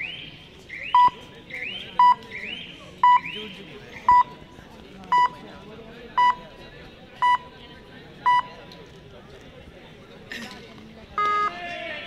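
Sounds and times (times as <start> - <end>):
short loud beep: 11.2 - 11.6.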